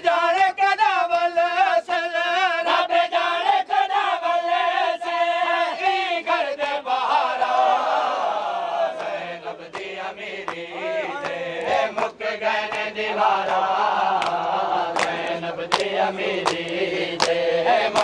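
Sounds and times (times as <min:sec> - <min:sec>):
men chanting a lament: 0:00.0 - 0:18.0
hands slapping bare chests: 0:08.9 - 0:18.0.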